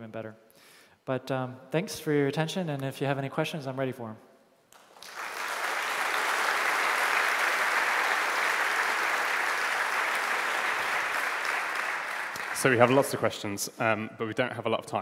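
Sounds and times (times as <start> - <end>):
audience applauding: 4.8 - 13.3.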